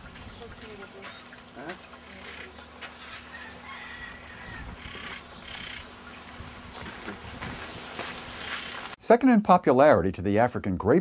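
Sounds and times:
bird chirps and squawks: 4.3 - 5.9.

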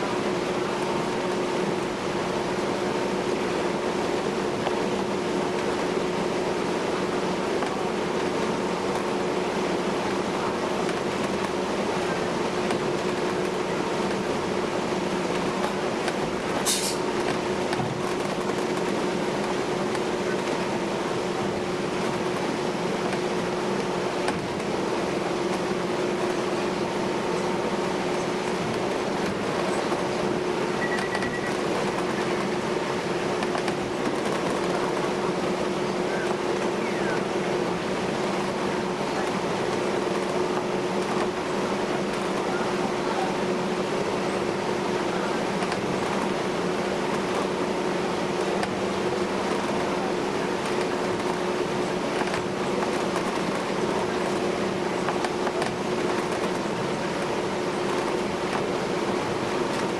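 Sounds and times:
ferry engine drone: 0.0 - 59.9.

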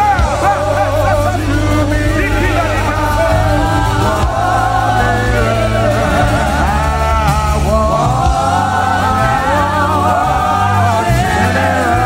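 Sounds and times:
band playing gospel music: 0.0 - 12.0
voices singing together: 0.0 - 12.0.

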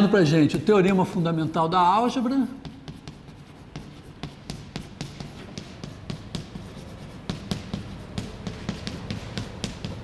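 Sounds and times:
chalk tapping and scratching: 0.3 - 10.0.

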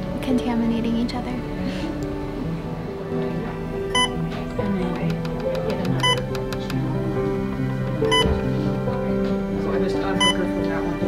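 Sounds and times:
background music: 0.0 - 11.0
infusion pump alarm beeping: 4.0 - 4.2, 6.0 - 6.2, 8.1 - 8.3, 10.2 - 10.4.

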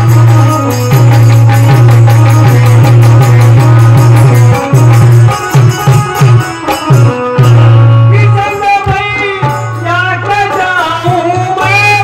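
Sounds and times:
drum strokes: 0.0 - 12.0
person singing through microphone: 7.4 - 12.0.

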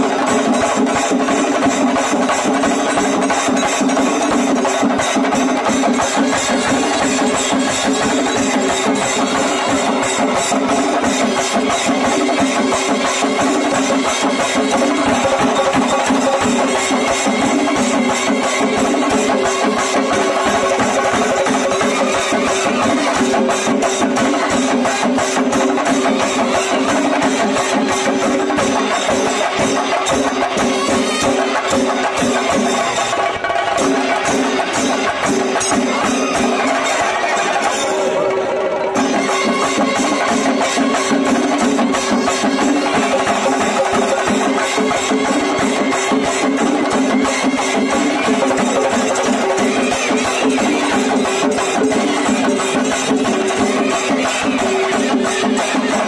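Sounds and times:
drums beaten with sticks: 0.0 - 56.0.

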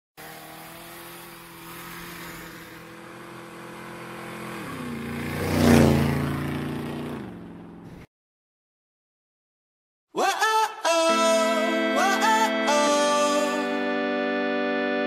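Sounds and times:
motorcycle engine running: 0.2 - 8.1.

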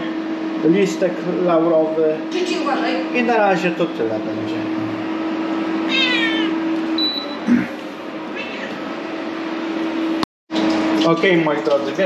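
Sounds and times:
steady low hum: 0.0 - 10.2
high animal calls: 5.9 - 6.6, 7.6 - 8.8.

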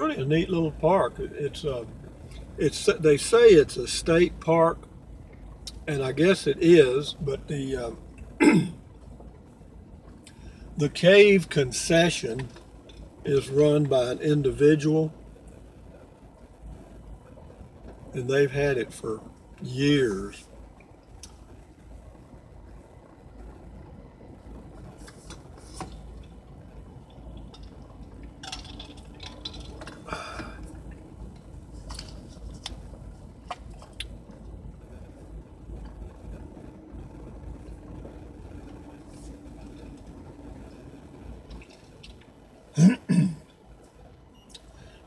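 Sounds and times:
engine and road rumble: 0.0 - 45.0
light clicks and rattles: 24.6 - 34.6.

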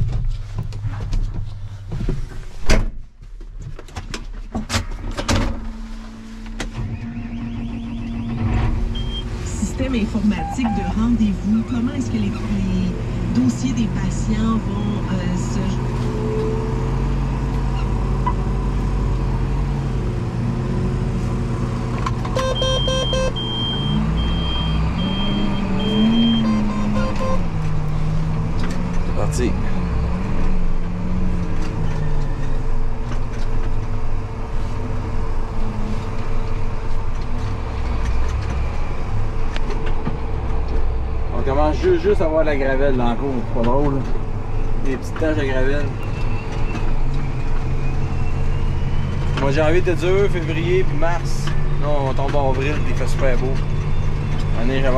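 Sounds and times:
high evenly spaced beeps: 9.0 - 9.3, 10.3 - 11.0, 22.4 - 27.4.

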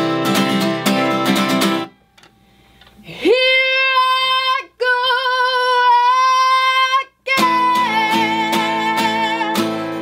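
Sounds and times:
acoustic guitar strumming: 0.0 - 2.5, 7.4 - 10.0.

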